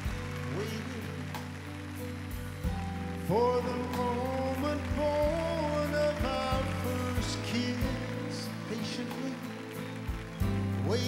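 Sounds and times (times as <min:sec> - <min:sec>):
man singing ballad: 0:00.0 - 0:02.2, 0:02.8 - 0:11.0
sustained backing accompaniment: 0:00.0 - 0:11.0.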